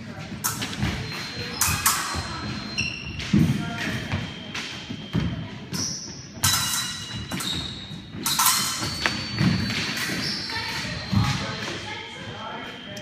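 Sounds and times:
fencing blades clashing: 0.4s - 4.8s, 5.7s - 11.8s.

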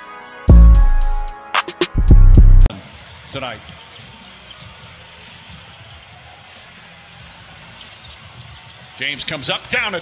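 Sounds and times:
basketball court noise: 2.0s - 10.0s.

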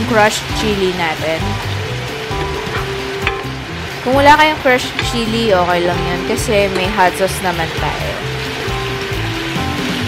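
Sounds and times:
background music: 0.0s - 10.0s
shrimp sizzling in a frying pan: 0.0s - 10.0s.

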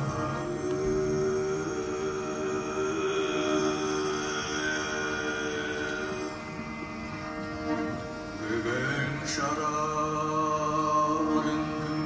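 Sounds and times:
bowed upright fiddle: 0.0s - 12.0s.

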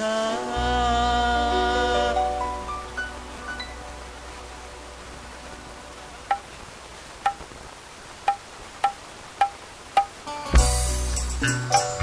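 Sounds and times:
low background noise: 0.0s - 12.0s
struck metal percussion notes: 8.8s - 12.0s.

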